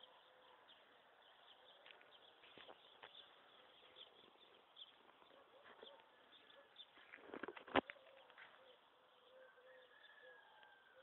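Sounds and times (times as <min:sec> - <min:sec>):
faint bird calls: 0:01.4 - 0:11.0.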